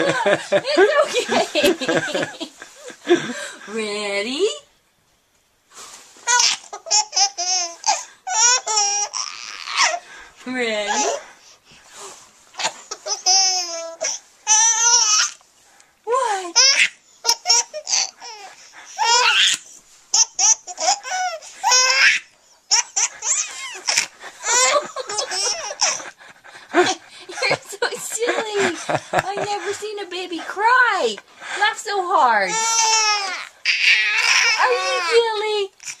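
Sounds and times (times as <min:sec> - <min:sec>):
baby giggling: 0:06.3 - 0:10.0, 0:12.6 - 0:15.4, 0:16.6 - 0:19.6, 0:20.2 - 0:26.2, 0:32.5 - 0:36.0.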